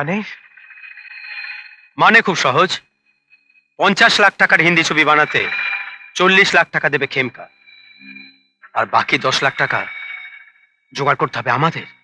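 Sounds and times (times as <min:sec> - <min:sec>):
high electronic tone: 0:00.3 - 0:12.0.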